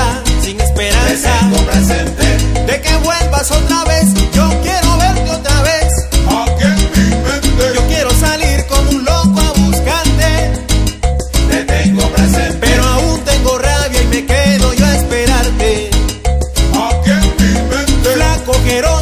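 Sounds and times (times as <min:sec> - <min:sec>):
salsa dance music: 0:00.0 - 0:19.0.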